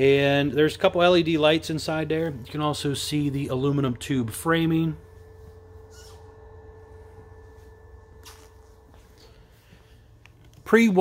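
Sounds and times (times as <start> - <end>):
faint steady tone: 0.0 - 11.0
low steady hum: 0.0 - 11.0.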